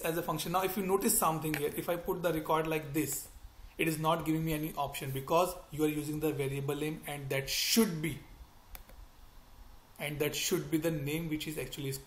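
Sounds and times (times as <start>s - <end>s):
computer mouse clicks: 1.4s - 1.8s, 8.7s - 9.0s.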